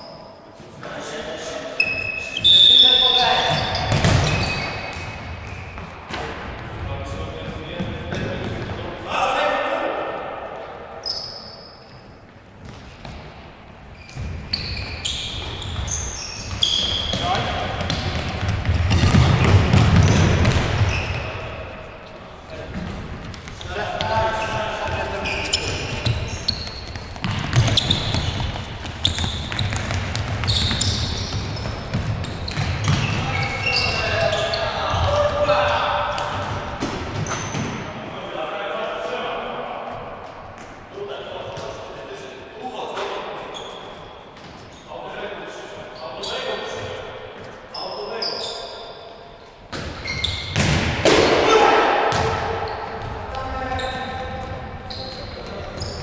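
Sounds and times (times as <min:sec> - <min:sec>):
ball kicked and bouncing on court: 0:03.5 - 0:06.8, 0:12.3 - 0:14.5, 0:15.4 - 0:21.2, 0:24.8 - 0:33.4, 0:49.7 - 0:51.4, 0:52.0 - 0:53.5.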